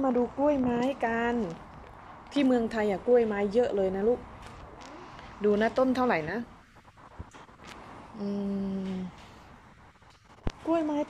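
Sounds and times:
woman humming low note: 8.2 - 9.2.

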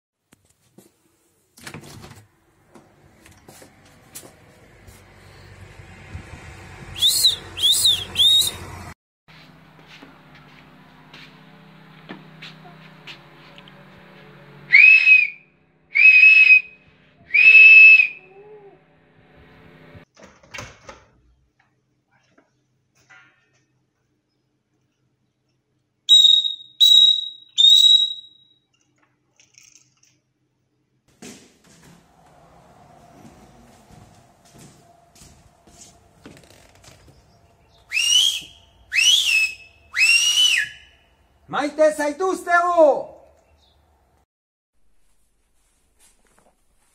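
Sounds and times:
loud high whistle blasts: 7.0 - 8.7, 14.7 - 18.2, 26.1 - 28.5, 37.9 - 41.0.

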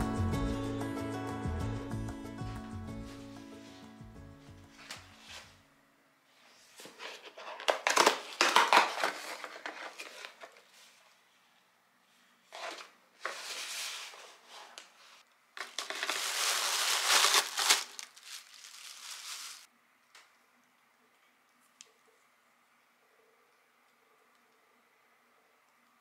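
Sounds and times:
plastic wrap crinkling: 7.6 - 10.7, 15.6 - 19.7
box flaps rustling: 15.6 - 19.6
cardboard box tearing open: 15.7 - 19.6.

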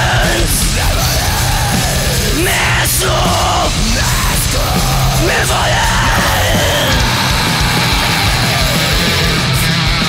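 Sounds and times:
death metal instrumental: 0.0 - 10.0.

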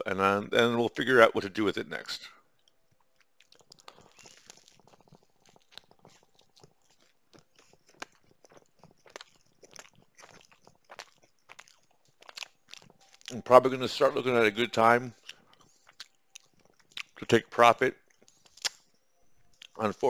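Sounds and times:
man chewing food: 0.9 - 20.0.

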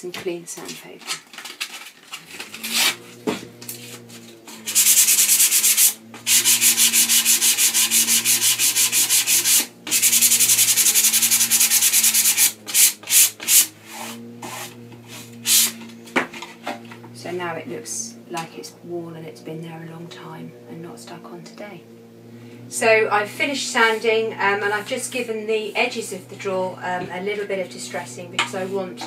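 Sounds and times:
sandpaper rubbing on paper: 3.8 - 15.8.

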